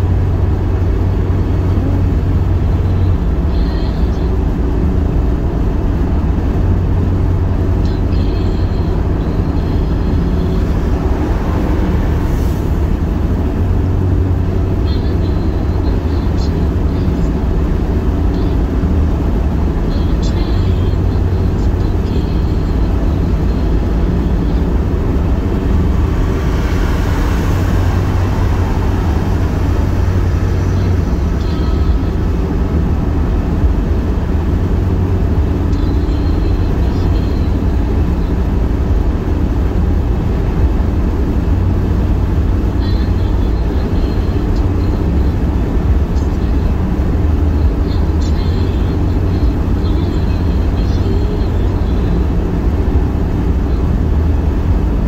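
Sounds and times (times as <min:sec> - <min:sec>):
car cabin road noise: 0:00.0 - 0:55.0.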